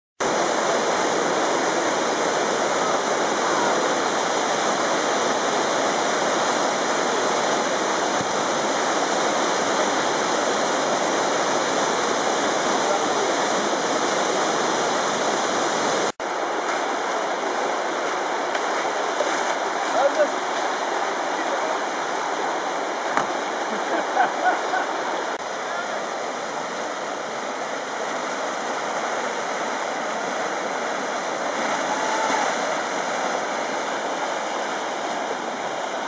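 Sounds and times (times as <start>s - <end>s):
whitewater rushing over rocks: 0.2s - 36.0s.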